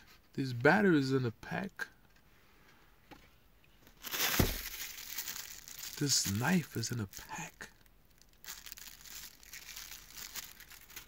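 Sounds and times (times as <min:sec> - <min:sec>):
plastic packaging crinkling: 0:04.0 - 0:11.0.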